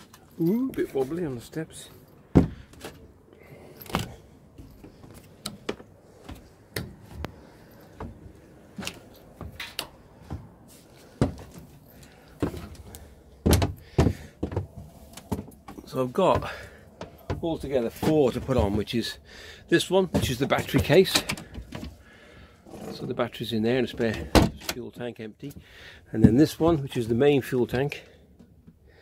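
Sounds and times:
footsteps thudding on boat deck: 0:13.4 - 0:17.5.

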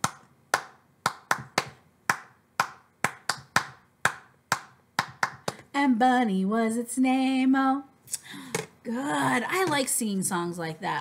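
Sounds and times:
hands clapping in rhythm: 0:00.0 - 0:05.7.

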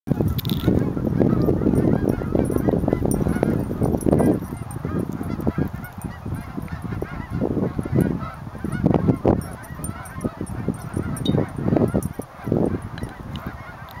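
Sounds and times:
geese honking: 0:00.4 - 0:14.0.

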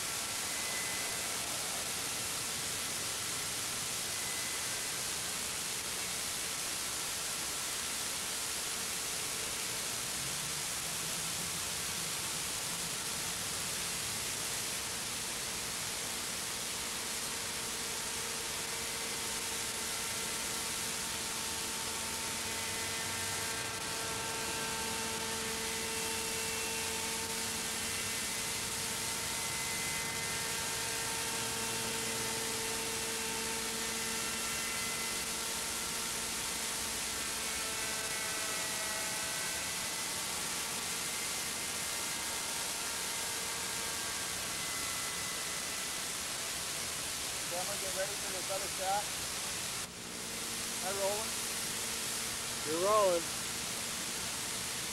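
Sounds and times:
model helicopter engine whine: 0:00.0 - 0:54.9
steady hiss: 0:00.0 - 0:54.9.

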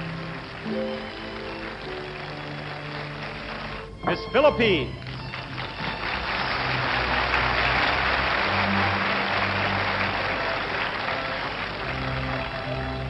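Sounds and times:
audience applause: 0:00.0 - 0:13.0
orchestra music: 0:00.0 - 0:13.0.

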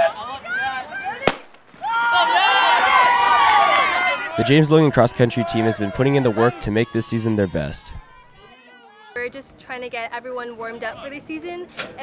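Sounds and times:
crowd shouting and cheering: 0:00.0 - 0:09.4
starting pistol crack: 0:01.3 - 0:01.9.

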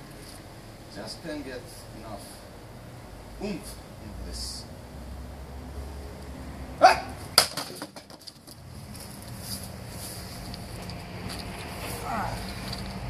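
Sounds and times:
man shouting: 0:06.8 - 0:07.2, 0:12.0 - 0:12.4.

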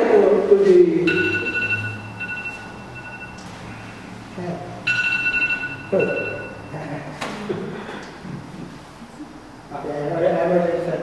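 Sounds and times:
high electronic tone: 0:01.1 - 0:04.2, 0:04.8 - 0:06.9.

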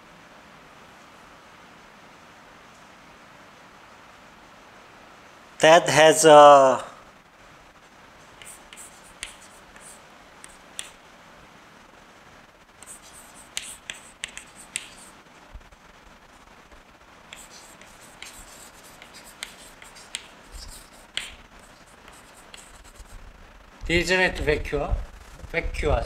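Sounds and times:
chalk writing on blackboard: 0:08.4 - 0:11.0, 0:12.8 - 0:15.2, 0:17.3 - 0:23.2.

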